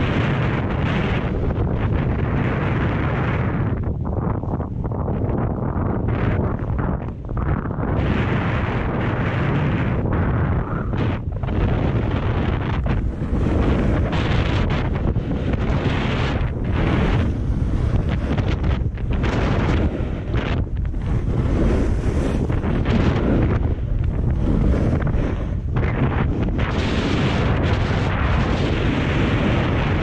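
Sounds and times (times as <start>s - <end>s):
wind buffeting microphone: 0.0s - 30.0s
skis carving snow hiss: 21.0s - 30.0s.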